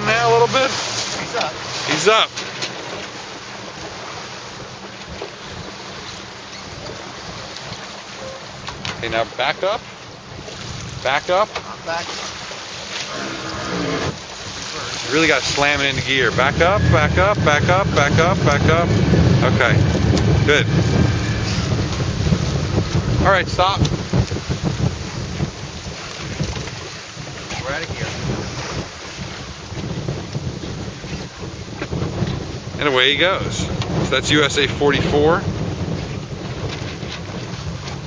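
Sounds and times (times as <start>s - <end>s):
choppy water washing around boat: 0.0s - 38.0s
motorboat engine running: 0.0s - 38.0s
wind rushing over microphone: 12.3s - 38.0s
low engine hum: 15.0s - 24.9s.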